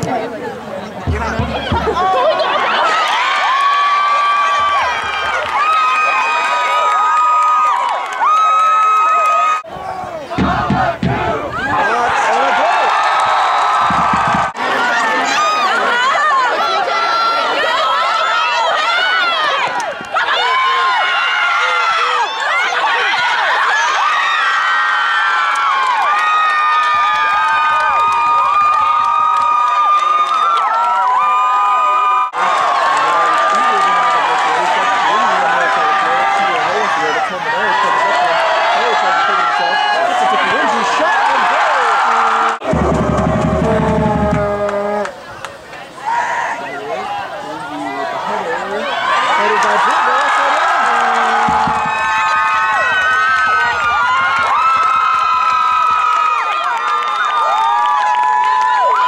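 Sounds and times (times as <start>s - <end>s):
crowd cheering and shouting: 0.0s - 59.0s.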